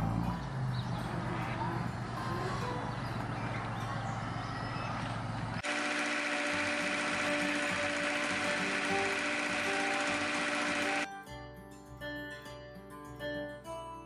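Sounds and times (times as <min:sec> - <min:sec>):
diesel engine running: 0:00.0 - 0:11.1
music: 0:06.4 - 0:14.0.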